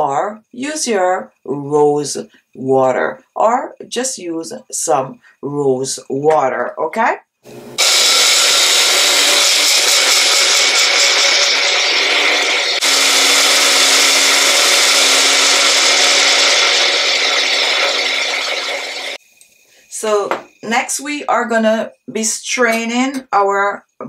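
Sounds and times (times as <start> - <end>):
blender whirring: 7.5 - 19.2.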